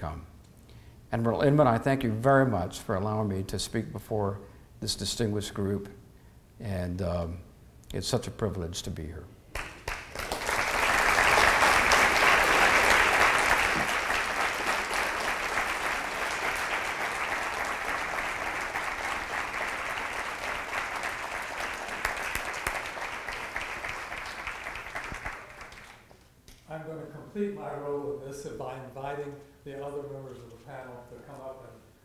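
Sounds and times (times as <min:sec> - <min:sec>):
audience applauding: 0:09.6 - 0:26.1.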